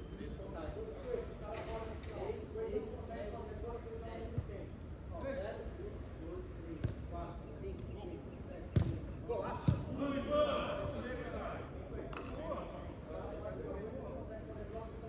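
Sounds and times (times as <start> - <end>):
football kick thuds: 8.8 - 9.0.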